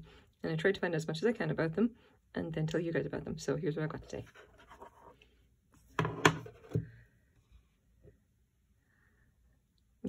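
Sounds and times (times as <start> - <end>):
objects knocking on wooden table: 5.9 - 6.9.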